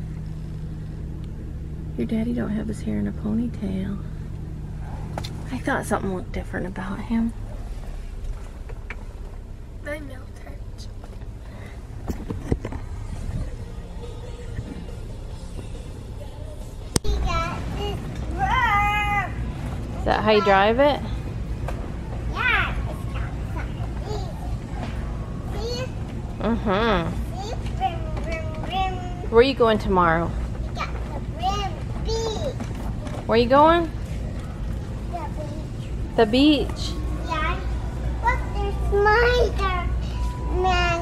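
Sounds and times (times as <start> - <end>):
car engine hum inside cabin: 0.0 - 41.0.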